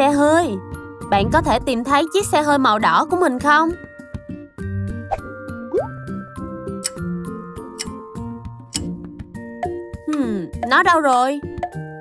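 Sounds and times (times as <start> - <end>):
light children's background music: 0.0 - 12.0.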